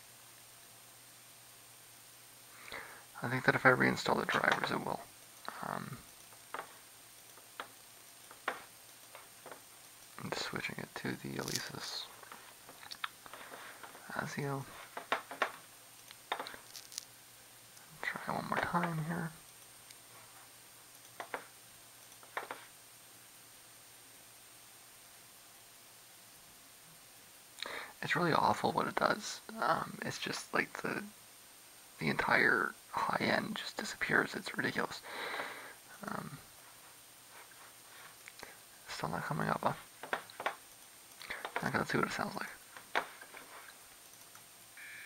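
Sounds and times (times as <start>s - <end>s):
faint steady hum: 0.0s - 45.0s
man talking: 3.2s - 6.0s, 10.2s - 12.2s, 14.0s - 14.8s, 18.0s - 19.4s, 27.6s - 31.1s, 32.0s - 35.1s, 36.0s - 36.4s, 38.8s - 39.9s, 41.3s - 42.6s.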